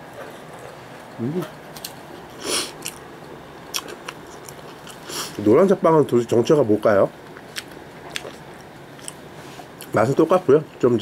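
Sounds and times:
wet chewing noises: 0:07.4 - 0:09.2.

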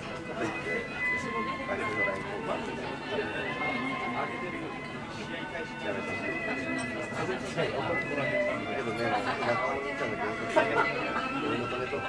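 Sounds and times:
quiet background music: 0:00.0 - 0:12.0
indistinct conversation: 0:00.1 - 0:12.0.

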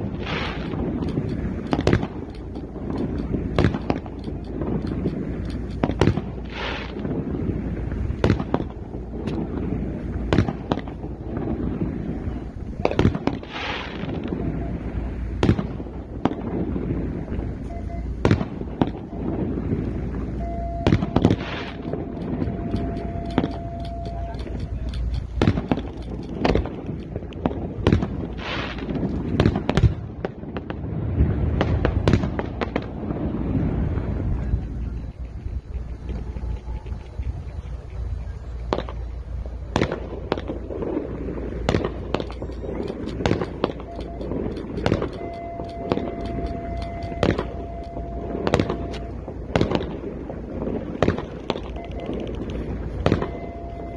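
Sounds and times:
fireworks and firecrackers banging: 0:00.0 - 0:53.9
voices: 0:18.9 - 0:27.4, 0:34.1 - 0:40.0, 0:41.6 - 0:49.8.

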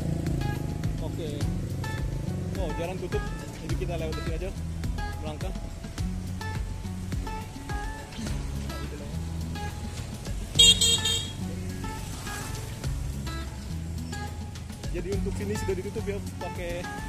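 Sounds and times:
background music: 0:00.0 - 0:17.0
street traffic: 0:00.0 - 0:17.0
vehicle horn toot: 0:10.6 - 0:11.4.

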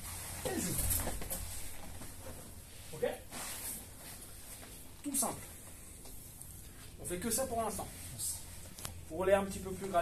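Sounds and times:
person grunting: 0:00.4 - 0:01.0.

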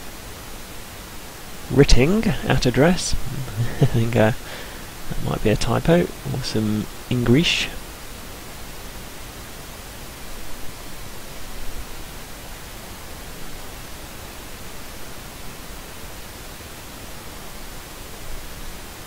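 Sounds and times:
steady hiss: 0:00.0 - 0:19.0.

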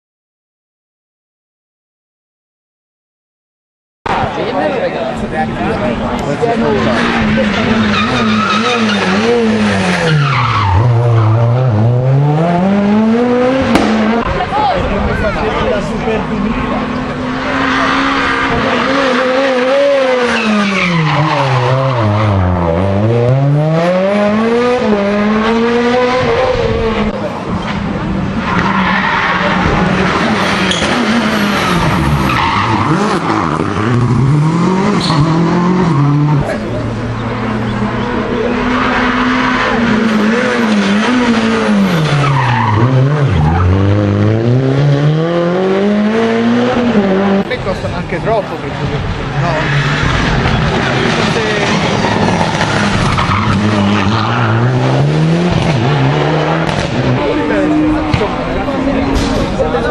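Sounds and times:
rally cars passing: 0:04.1 - 0:59.9
tyre squeal: 0:30.4 - 0:33.2, 0:34.9 - 0:36.6.

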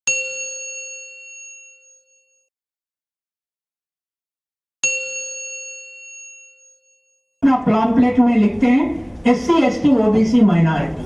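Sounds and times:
bell chime ding: 0:00.1 - 0:02.5, 0:04.8 - 0:07.4.

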